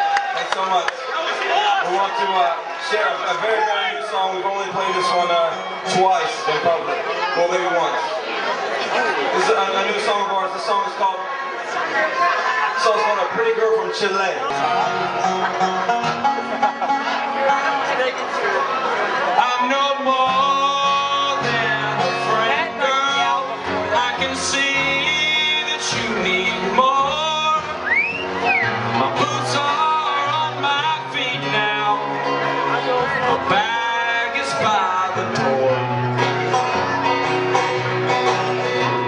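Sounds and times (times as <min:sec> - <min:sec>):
banjo: 0:12.9 - 0:39.0
acoustic guitar picking: 0:14.4 - 0:39.0
man singing folk song: 0:19.3 - 0:27.9, 0:28.8 - 0:36.5.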